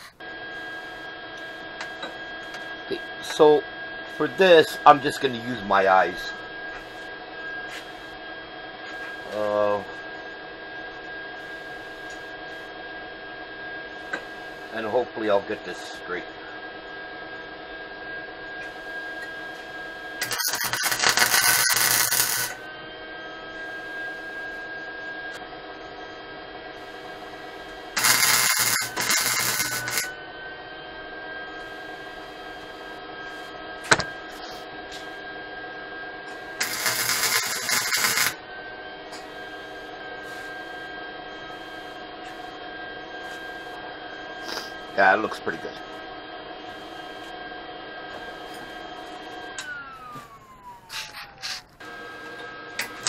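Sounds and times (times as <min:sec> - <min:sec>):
steady hum: 0:00.0 - 0:53.0
welder arc crackling: 0:18.6 - 0:22.6, 0:26.8 - 0:30.1, 0:36.3 - 0:38.4.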